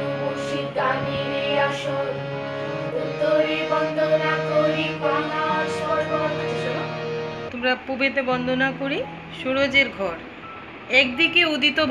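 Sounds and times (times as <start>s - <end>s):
voices singing devotional song: 0.0s - 7.5s
harmonium drone and melody: 0.0s - 11.8s.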